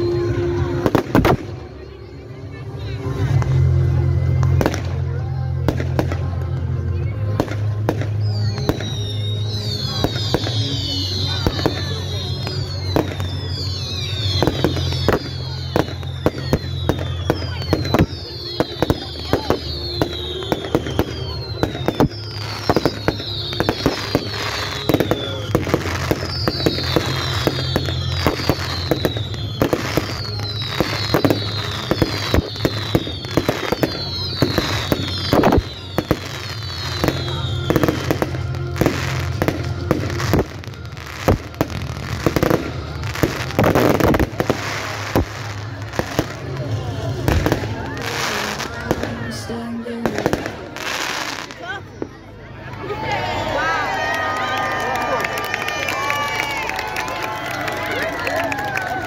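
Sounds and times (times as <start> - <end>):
fireworks bangs and crackles: 0.0 - 52.8, 53.6 - 59.0
falling firework whistles: 7.4 - 49.3.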